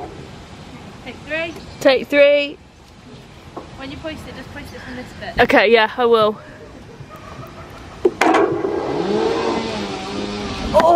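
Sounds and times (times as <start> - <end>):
putter striking golf ball: 8.0 - 8.9.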